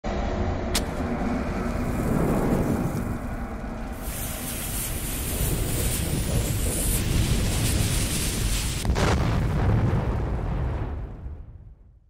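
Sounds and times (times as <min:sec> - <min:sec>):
deep steady rumble: 0:00.0 - 0:11.4
burning fuse hiss: 0:01.6 - 0:09.0
bomb blast: 0:05.2 - 0:12.0.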